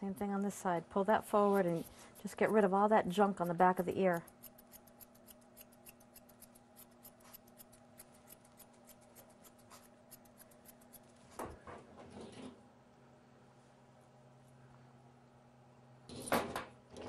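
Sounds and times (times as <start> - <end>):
thinning shears snipping hair: 0.0 - 11.2.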